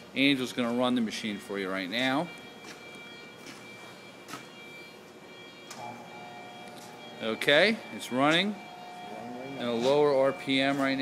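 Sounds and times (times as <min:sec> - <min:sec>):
high-pitched machine whine: 0:00.2 - 0:11.0.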